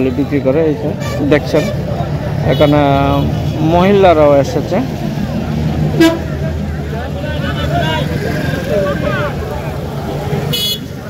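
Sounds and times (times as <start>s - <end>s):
low traffic hum: 0.0s - 11.0s
market chatter: 0.0s - 11.0s
vehicle horn toot: 6.0s - 6.2s, 10.5s - 10.9s.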